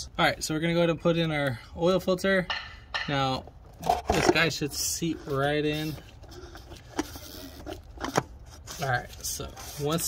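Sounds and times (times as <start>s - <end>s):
plastic clicks and scrapes: 3.8s - 10.0s.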